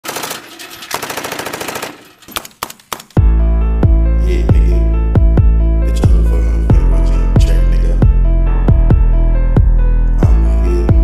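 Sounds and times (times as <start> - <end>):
automatic gunfire bursts: 0.0 - 2.2.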